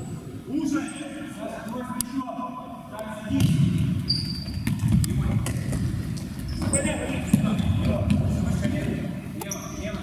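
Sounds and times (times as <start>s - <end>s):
shoe squeaks: 4.0s - 5.0s, 6.2s - 7.8s, 9.4s - 10.0s.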